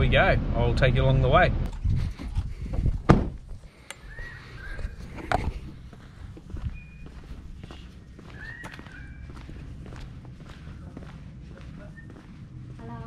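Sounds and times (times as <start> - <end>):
footsteps on brick paving: 4.7 - 13.0.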